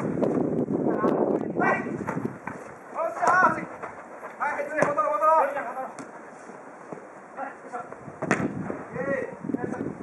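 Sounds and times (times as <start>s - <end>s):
quick running footsteps: 1.4s - 7.1s.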